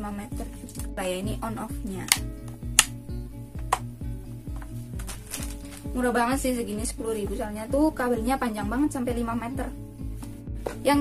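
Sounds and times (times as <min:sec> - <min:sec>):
background music with steady beat: 0:00.0 - 0:11.0
rocker switch clicks: 0:02.0 - 0:03.0, 0:03.6 - 0:03.9.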